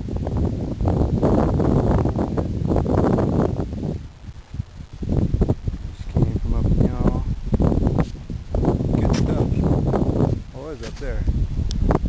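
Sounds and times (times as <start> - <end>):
footsteps crunching over rock: 7.8 - 9.5, 10.2 - 11.2
brushing through shrubs: 10.3 - 11.2.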